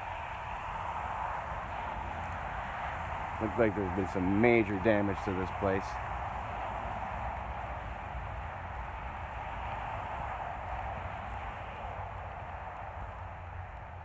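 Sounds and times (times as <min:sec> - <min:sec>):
even outdoor rush: 0:00.0 - 0:14.0.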